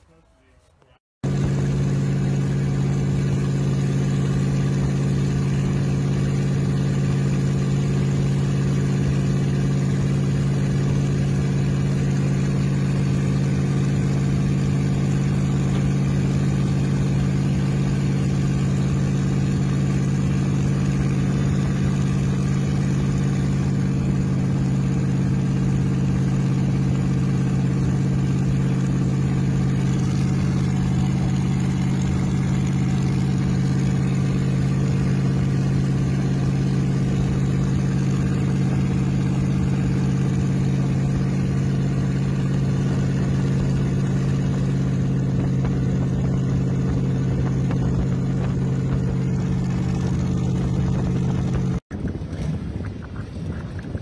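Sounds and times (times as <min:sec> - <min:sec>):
car engine droning at cruise: 0:00.8 - 0:54.0.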